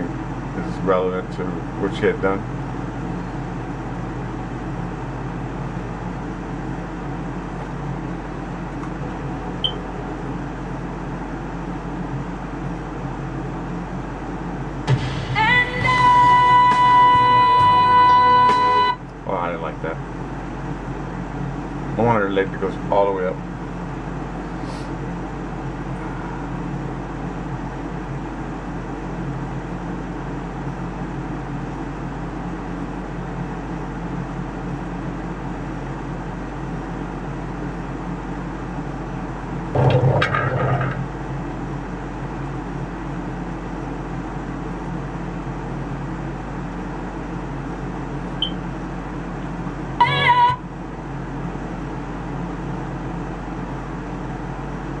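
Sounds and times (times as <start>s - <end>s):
steady mechanical hum: 0.0s - 55.0s
short pitched call: 50.0s - 50.6s.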